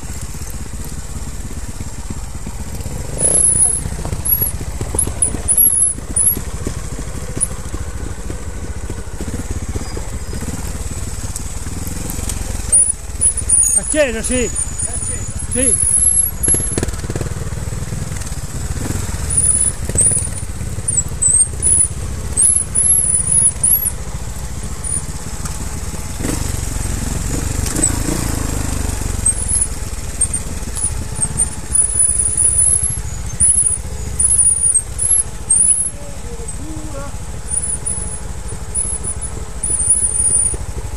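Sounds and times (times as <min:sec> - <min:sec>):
heavy rumble of riding: 0:00.0 - 0:40.9
motorcycle engine revving in bursts: 0:00.0 - 0:40.9
thin high squeals: 0:03.2 - 0:06.4, 0:12.7 - 0:16.8, 0:31.2 - 0:40.6.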